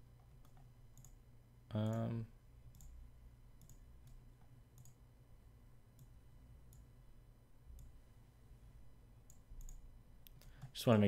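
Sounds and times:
faint computer mouse clicks: 0.2 - 1.2, 2.7 - 3.0, 3.6 - 4.2, 4.8 - 5.0, 9.3 - 10.8.

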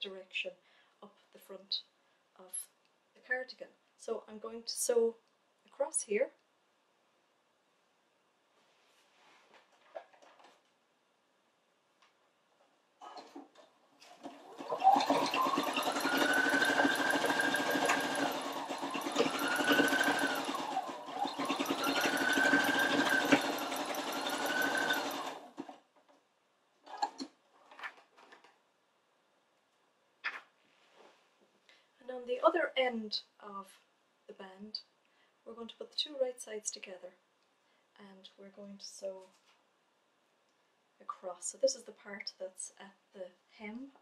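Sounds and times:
sewing machine stitching: 13.0 - 25.8, 26.8 - 28.3.

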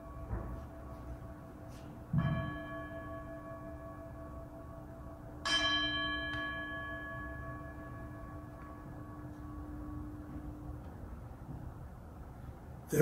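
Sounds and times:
altar bell ringing: 0.0 - 11.2.

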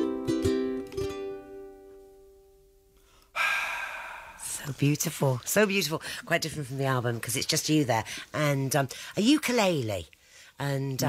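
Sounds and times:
ukulele note: 0.0 - 2.1
breathy sigh: 3.0 - 4.6
person speaking: 3.4 - 11.0.

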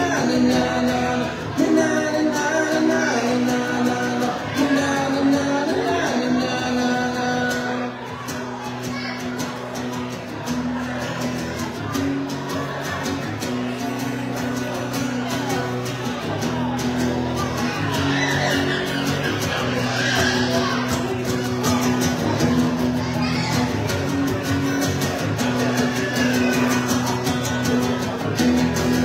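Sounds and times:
acoustic guitar strumming: 0.0 - 29.0.

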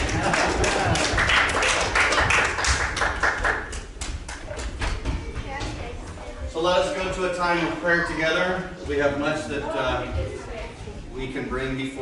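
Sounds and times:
crowd clapping: 0.0 - 4.8.

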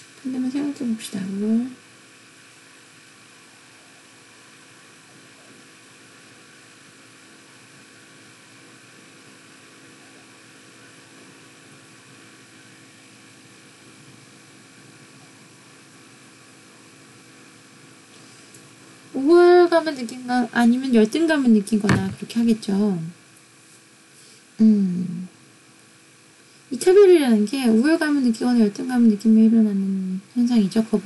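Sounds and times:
faint electrical hum: 0.0 - 31.0.

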